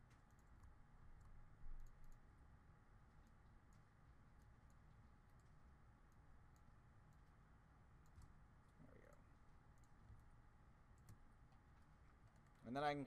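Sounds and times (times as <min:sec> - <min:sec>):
computer mouse clicks: 0:00.0 - 0:02.3, 0:03.2 - 0:07.4, 0:08.0 - 0:10.3, 0:10.9 - 0:12.6
low room hiss: 0:00.0 - 0:13.0.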